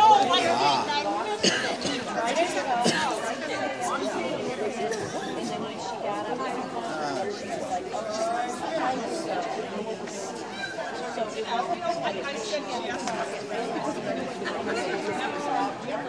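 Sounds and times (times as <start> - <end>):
indistinct chatter: 0.0 - 16.0.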